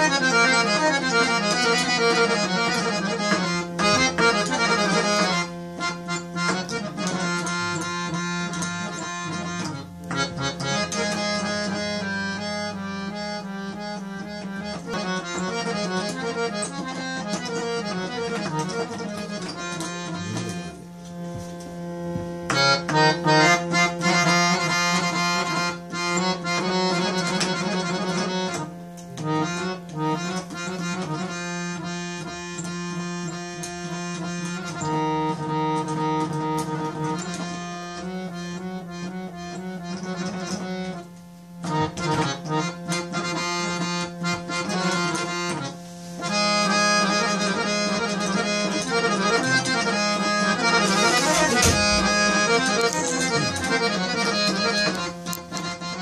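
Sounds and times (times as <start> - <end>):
harmonium melody with drone: 0.0 - 56.0.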